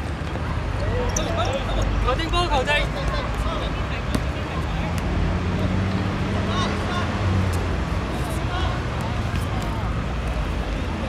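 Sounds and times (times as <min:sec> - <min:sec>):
low rumble of city traffic: 0:00.0 - 0:11.0.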